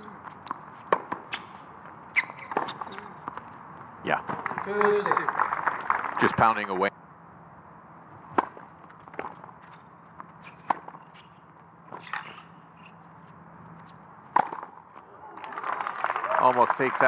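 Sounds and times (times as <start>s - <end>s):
tennis racket hitting ball: 0.4s - 1.6s, 8.2s - 11.1s, 14.3s - 14.7s.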